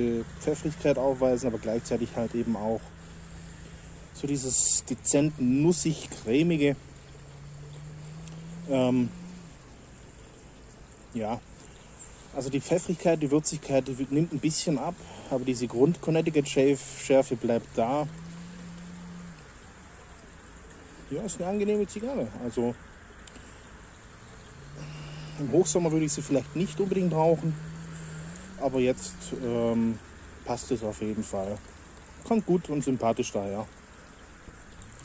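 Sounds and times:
man speaking: 0.0s - 2.9s, 4.2s - 6.8s, 8.7s - 9.2s, 11.2s - 11.4s, 12.4s - 18.1s, 21.1s - 22.8s, 24.8s - 27.6s, 28.6s - 31.6s
faint outdoor hiss: 0.0s - 35.0s
man humming: 24.8s - 25.4s.

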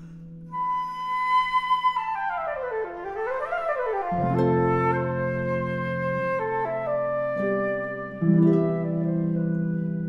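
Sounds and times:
solo flute playing runs: 0.5s - 10.0s.

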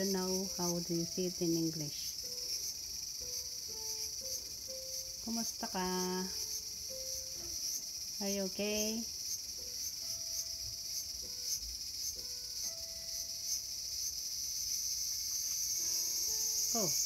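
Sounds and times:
cicadas buzzing: 0.0s - 17.0s.

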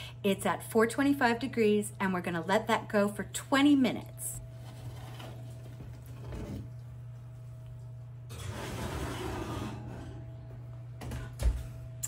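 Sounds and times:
pan sliding onto oven rack: 8.3s - 10.2s.

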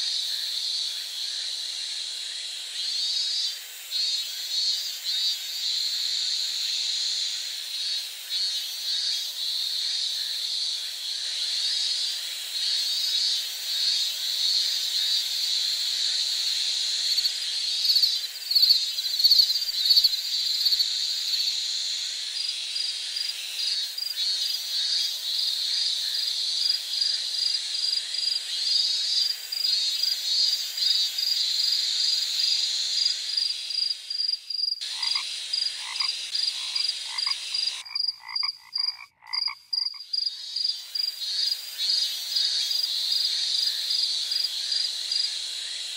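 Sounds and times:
insects chirping: 0.0s - 45.9s
repeated insect call: 0.0s - 45.9s.

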